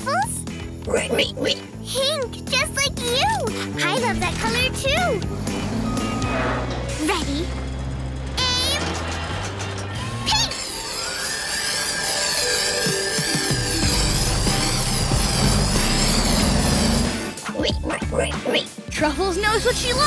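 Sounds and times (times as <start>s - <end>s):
cartoon background music: 0.0s - 20.0s
whirring spray effect: 8.4s - 17.4s
warbling zing effect: 10.0s - 17.0s.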